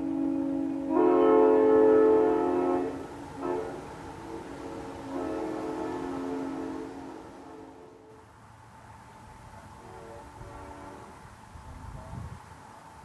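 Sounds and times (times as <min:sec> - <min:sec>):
air horn chord blasts: 0:00.0 - 0:08.2, 0:09.8 - 0:11.3.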